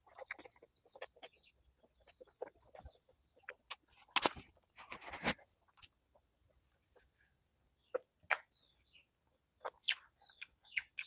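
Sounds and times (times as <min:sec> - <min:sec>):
person chewing food: 0:00.0 - 0:04.7, 0:09.6 - 0:11.0
wet smacks and clicks: 0:09.6 - 0:11.0.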